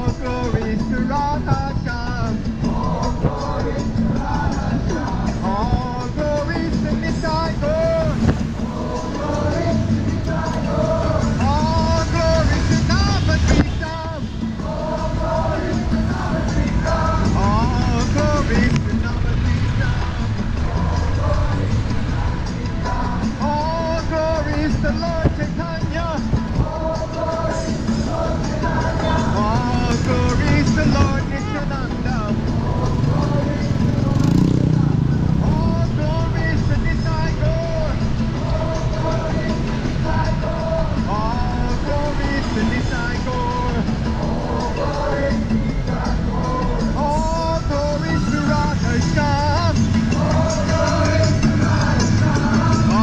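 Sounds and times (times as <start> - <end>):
road and wind rumble: 0.0 - 53.0
vehicle passing: 0.0 - 53.0
person chanting: 2.1 - 53.0.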